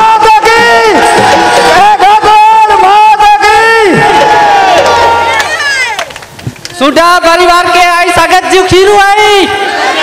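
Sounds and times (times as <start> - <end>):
men shouting long cries: 0.0 - 5.4
crowd noise: 0.0 - 10.0.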